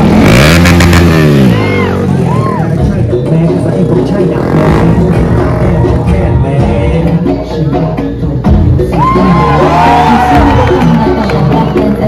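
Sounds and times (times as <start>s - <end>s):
motorcycle engine revving: 0.0s - 7.1s.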